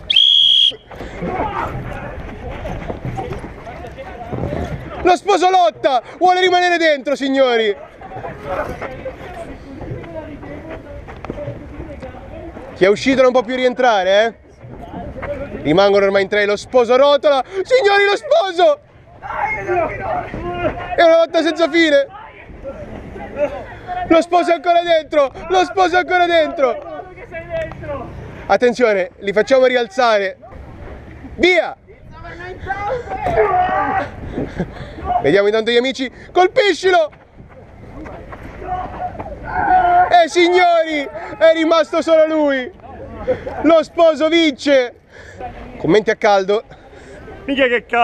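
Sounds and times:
whistle blast: 0.0s - 0.9s
people shouting: 0.0s - 2.2s, 17.7s - 22.6s, 32.7s - 34.2s, 38.5s - 42.3s
players scuffling: 0.0s - 29.8s, 32.2s - 44.6s.

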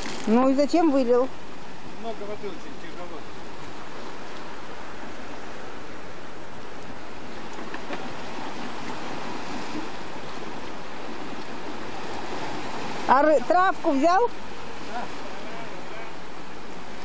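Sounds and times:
sea surf on rocky shore: 0.0s - 17.0s.

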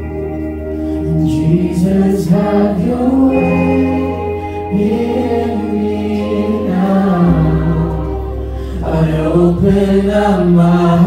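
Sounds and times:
bass guitar: 0.0s - 11.0s
electric guitar: 0.0s - 11.0s
voices singing held notes: 1.0s - 11.0s.

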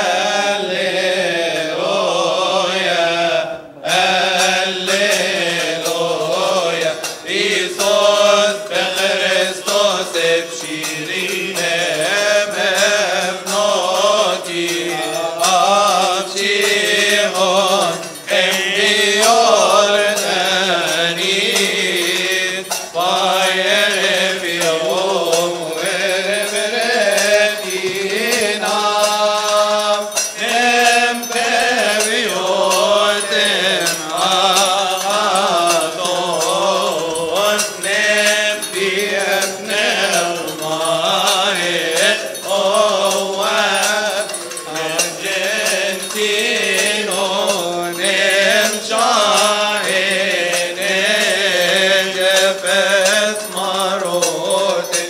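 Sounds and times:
men chanting a hymn: 0.0s - 55.0s.

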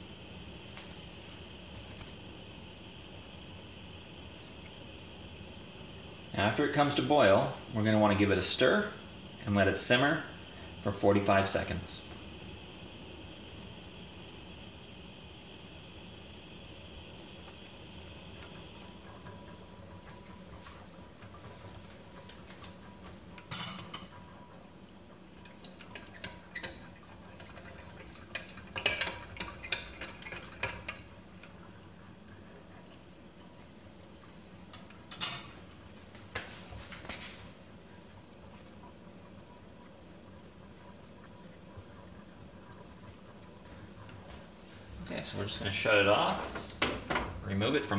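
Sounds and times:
coffee brewer hissing: 0.0s - 47.9s.

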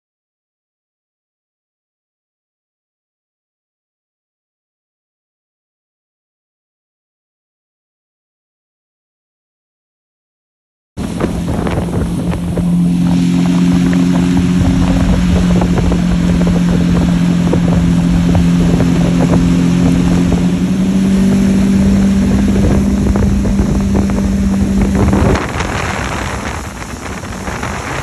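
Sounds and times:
car engine cruising: 11.0s - 28.0s
tyres spraying water: 11.0s - 28.0s
wind on microphone: 11.0s - 28.0s.

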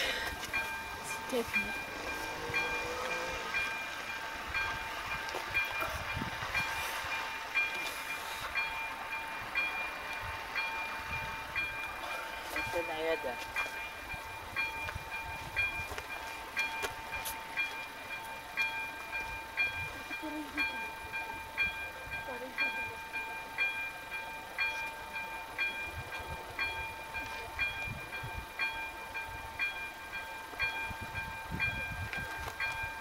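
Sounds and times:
steady high tone: 0.0s - 23.6s
level crossing warning bell: 0.0s - 33.0s.

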